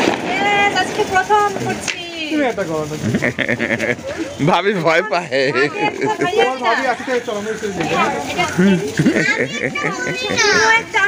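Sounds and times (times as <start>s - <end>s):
excited voices talking: 0.2s - 11.0s.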